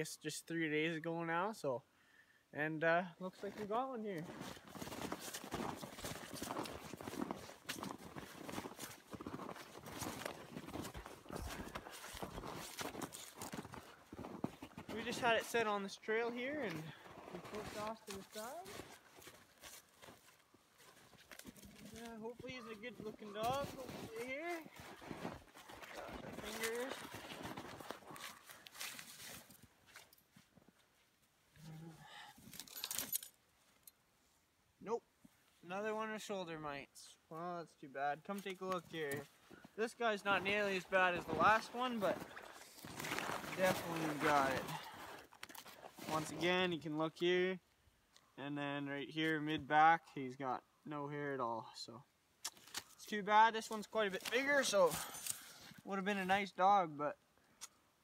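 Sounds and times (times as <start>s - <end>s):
footsteps crunching through snow: 3.3s - 30.7s, 38.3s - 46.6s.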